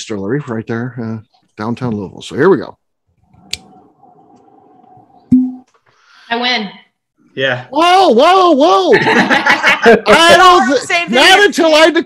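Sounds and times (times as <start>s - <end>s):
cork popping from bottle: 5.3s - 5.7s.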